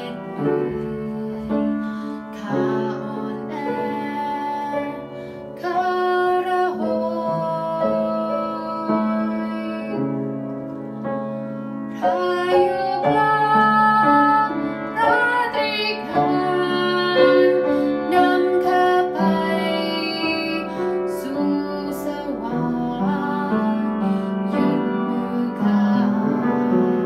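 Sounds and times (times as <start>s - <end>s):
woman singing: 0.0s - 10.2s, 11.9s - 27.0s
keyboard accompaniment: 0.0s - 27.0s.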